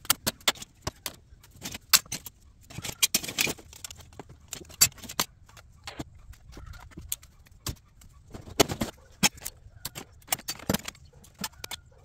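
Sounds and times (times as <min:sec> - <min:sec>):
hard scraps clattering into plastic totes: 0:00.3 - 0:05.2, 0:08.3 - 0:11.6.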